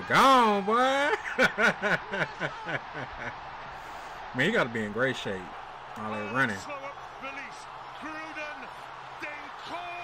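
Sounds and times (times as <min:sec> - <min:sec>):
man laughing: 0:01.1 - 0:03.2.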